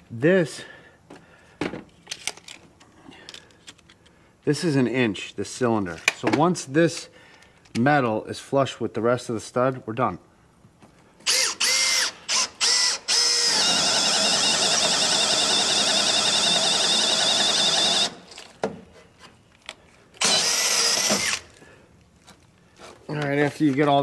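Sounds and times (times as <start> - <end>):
cordless drill boring into wood: 11.2 - 18.4, 20.2 - 21.5.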